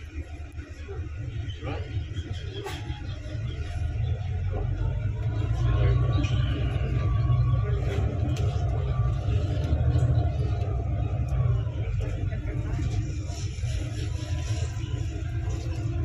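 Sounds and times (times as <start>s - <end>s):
bus rumbling from inside: 0.0s - 16.0s.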